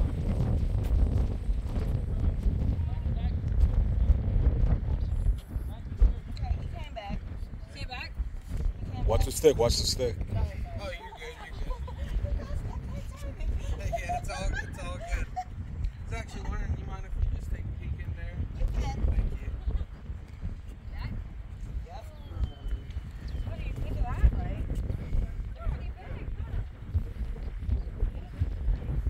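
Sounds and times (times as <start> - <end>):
wind buffeting microphone: 0.0 - 29.0
faint voices talking: 1.8 - 29.0.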